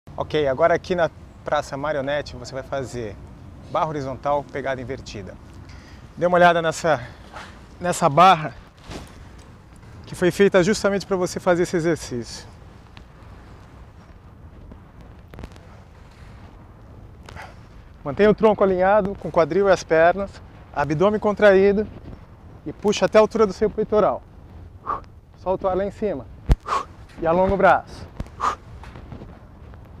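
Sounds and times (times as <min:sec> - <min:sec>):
low outdoor rumble: 0:00.1 - 0:30.0
man breathing out forcefully: 0:05.7 - 0:06.1, 0:24.8 - 0:25.1, 0:26.6 - 0:27.2, 0:28.2 - 0:28.9.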